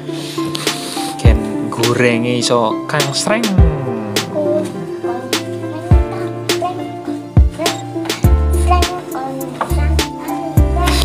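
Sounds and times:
deep bass notes: 1.3 - 2.0, 3.0 - 6.2
melody: 1.3 - 8.5
sharp drum hits: 3.0 - 4.6.

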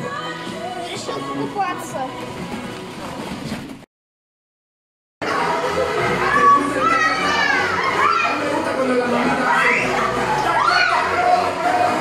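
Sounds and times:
children playing and calling out: 5.2 - 8.6, 9.2 - 12.0.

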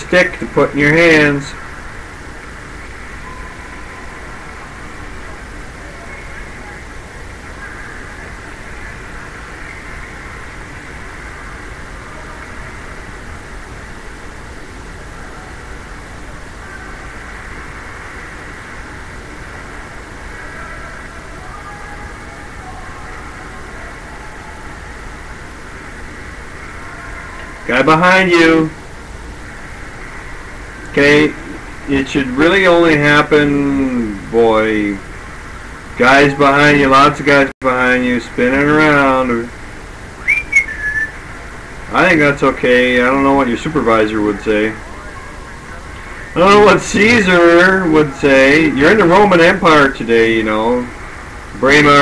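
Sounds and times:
faint indistinct voices: 0.0 - 37.4, 38.2 - 52.0.

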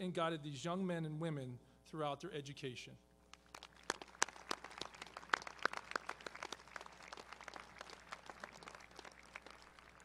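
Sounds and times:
hand claps: 3.3 - 10.0.

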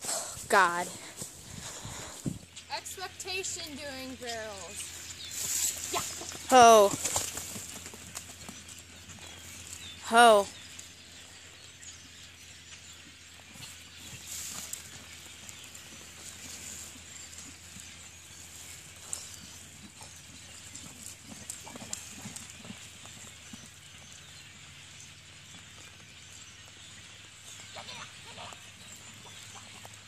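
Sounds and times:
distant horse hoofbeats on dirt: 0.8 - 30.0.

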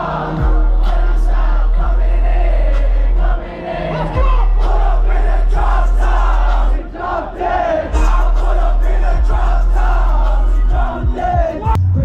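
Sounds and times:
crowd shouting and chanting: 0.0 - 12.0.

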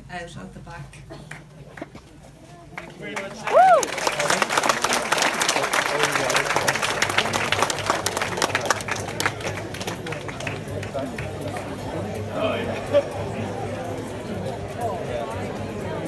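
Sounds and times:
audience applauding: 2.7 - 12.1.

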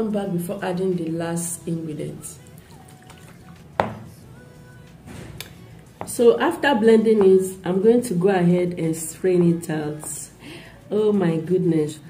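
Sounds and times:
faint background music: 0.0 - 12.0
blender jar knocking on counter: 3.8 - 4.1.

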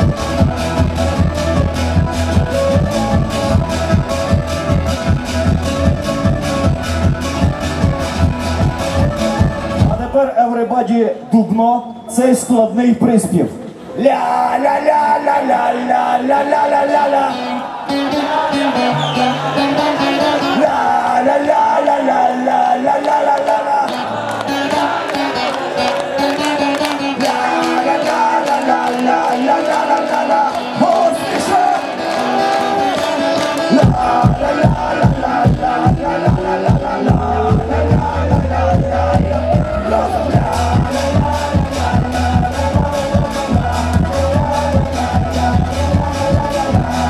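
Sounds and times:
drum kit beat: 0.0 - 10.1, 32.1 - 47.0
folk-rock band playing: 0.0 - 10.1, 17.4 - 21.7, 23.9 - 47.0.

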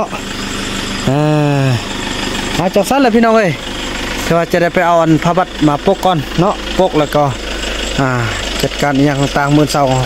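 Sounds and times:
pickup truck engine idling: 0.0 - 10.0.

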